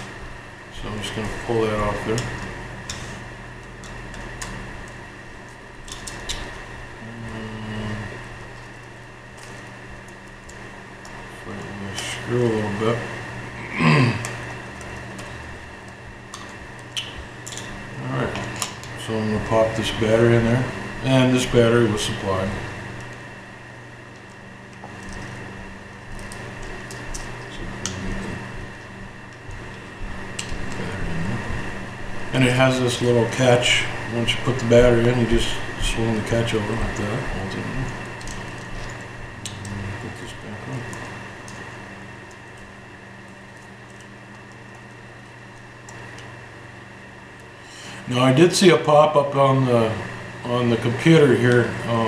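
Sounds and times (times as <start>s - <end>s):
steady room hum: 0.0s - 52.0s.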